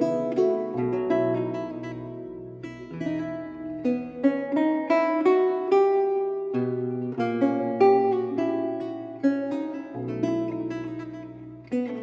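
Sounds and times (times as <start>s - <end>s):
plucked lute notes: 0.0s - 12.0s.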